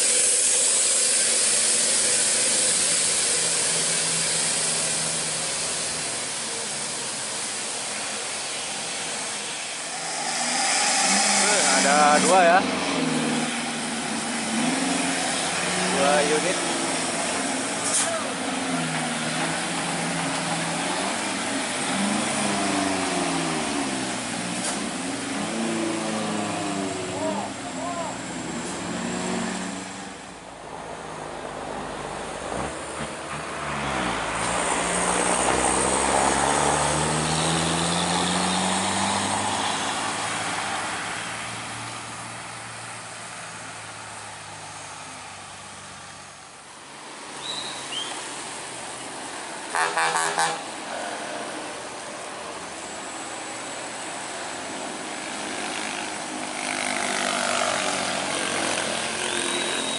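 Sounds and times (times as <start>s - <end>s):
tyre hiss on wet road: 0.0s - 30.3s, 31.0s - 59.9s
diesel truck engines under load: 0.0s - 59.9s.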